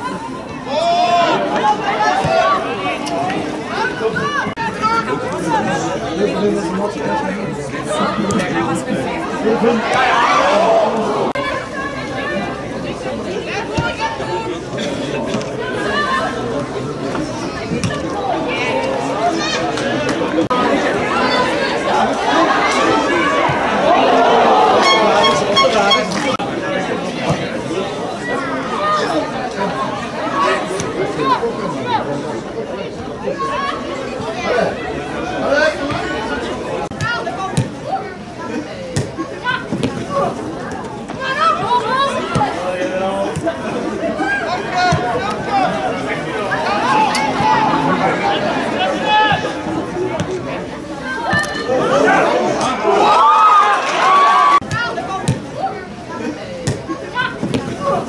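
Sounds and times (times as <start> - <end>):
voices calling and chattering: 0.0 - 58.0.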